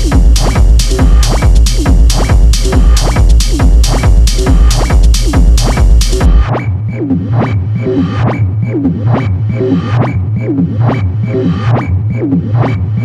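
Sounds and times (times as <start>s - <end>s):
pulsing bass: 0.0s - 13.0s.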